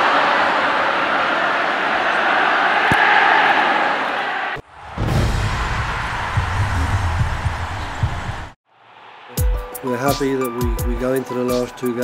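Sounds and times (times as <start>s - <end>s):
stadium crowd roar: 0.0s - 12.0s
low pulsing beat: 6.3s - 8.6s.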